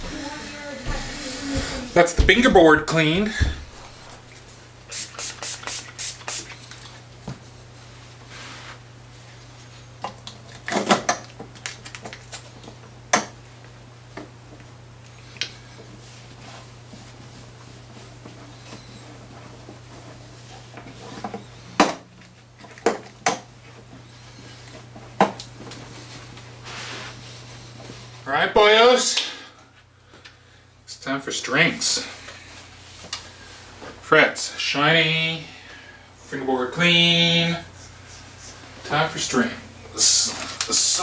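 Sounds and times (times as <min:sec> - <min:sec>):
steady low hum: 0:00.0 - 0:05.0
cloth rubbing on guitar: 0:07.8 - 0:08.9, 0:25.9 - 0:28.2.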